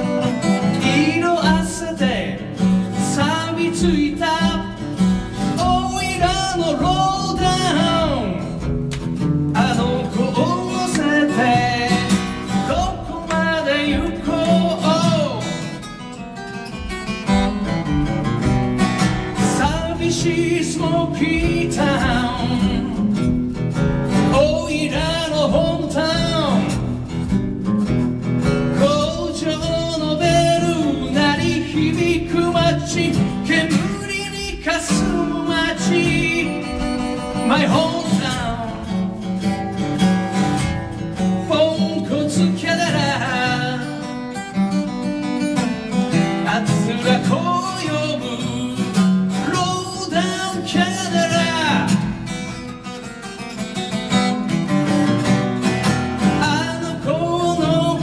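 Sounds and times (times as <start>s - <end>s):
man singing: 0.0s - 27.4s, 28.4s - 53.4s, 55.6s - 58.0s
acoustic guitar strumming: 0.0s - 58.0s.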